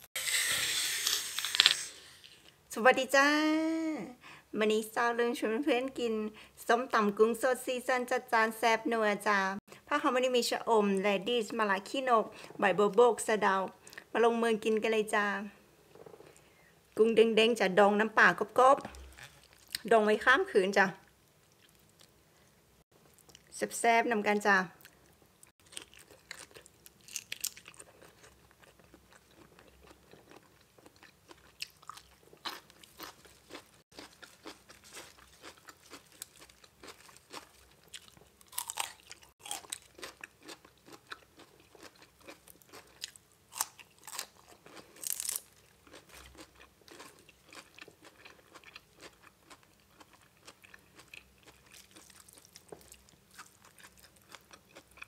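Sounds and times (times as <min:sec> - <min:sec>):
wet mouth clicks: 0:00.2 - 0:02.5
person chewing and crunching: 0:18.9 - 0:19.9, 0:24.8 - 0:55.0.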